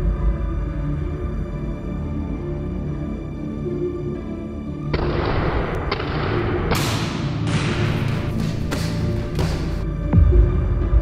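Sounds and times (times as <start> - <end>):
dark cinematic background music: 0.0 - 11.0.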